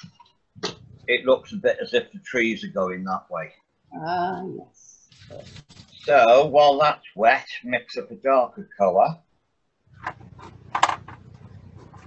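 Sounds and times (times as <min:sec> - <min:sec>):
low steady hum: 0:00.0 - 0:09.2, 0:09.9 - 0:12.0
paintbrush scraping palette: 0:09.9 - 0:12.0.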